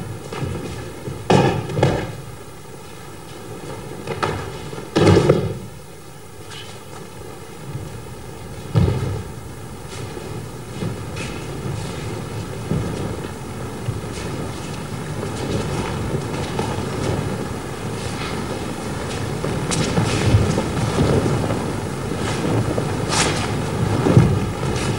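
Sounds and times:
steady rumbling noise: 0.0 - 24.9.

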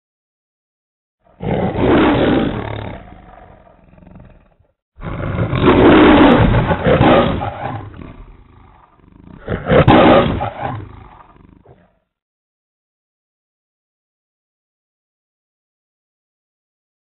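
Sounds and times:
lion roaring: 1.2 - 12.1.

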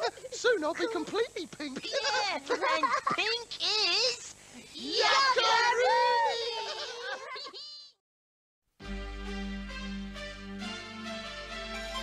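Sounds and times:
cartoonish voices calling and laughing: 0.0 - 8.0.

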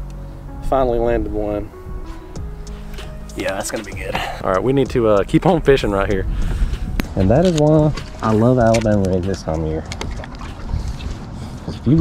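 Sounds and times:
man speaking: 3.3 - 6.3, 7.2 - 9.9.

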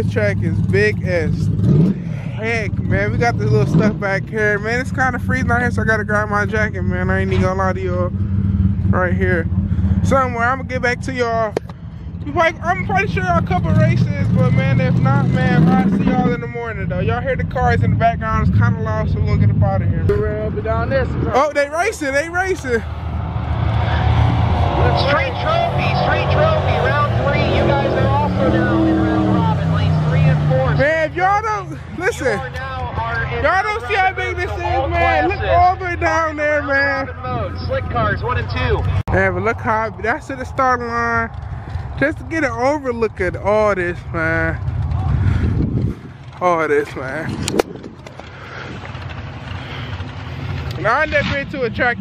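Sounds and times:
man's voice: 0.0 - 1.5, 2.1 - 8.1, 12.2 - 22.8, 24.8 - 41.3, 42.0 - 44.6
drag race car engines rumbling: 0.0 - 52.0.

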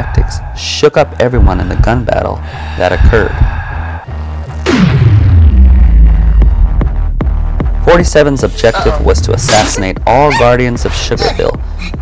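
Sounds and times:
deep low rumble: 4.8 - 7.4.

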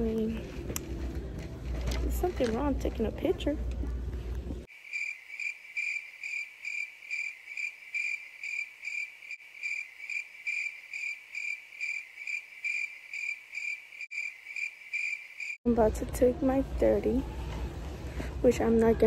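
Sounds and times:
crickets chirping: 4.7 - 15.6.

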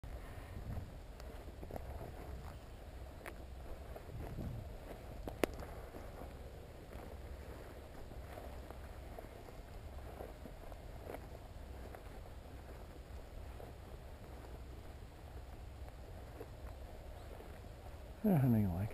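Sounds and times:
footsteps on grass: 0.0 - 18.9
steady low rumble: 0.0 - 18.9.

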